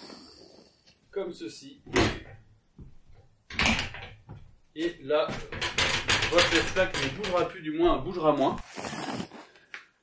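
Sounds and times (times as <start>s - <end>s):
soft knocks: 5.3s - 8.3s.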